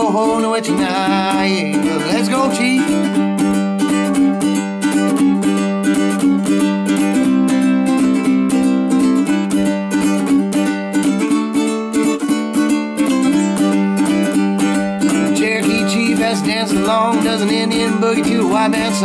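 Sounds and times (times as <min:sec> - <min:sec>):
ukulele strummed quickly: 0:00.0 - 0:19.0.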